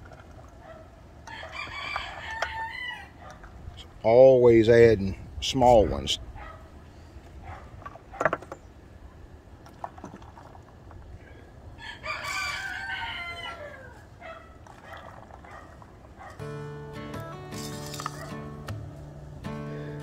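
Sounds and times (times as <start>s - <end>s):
rooster crowing: 1.2s - 3.2s, 11.8s - 14.0s
background music: 16.4s - 20.0s.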